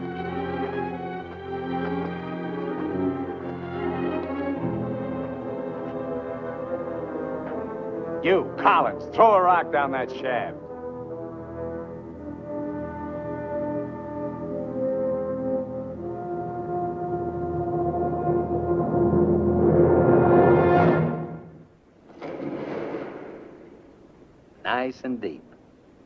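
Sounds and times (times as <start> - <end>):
orchestral music led by brass: 0.0 - 21.7.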